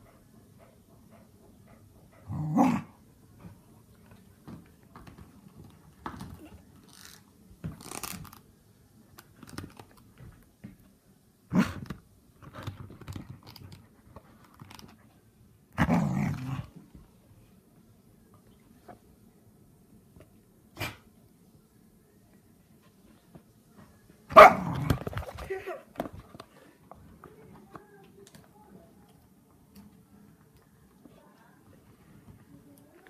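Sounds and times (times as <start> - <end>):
dog barking: 24.3 - 24.8.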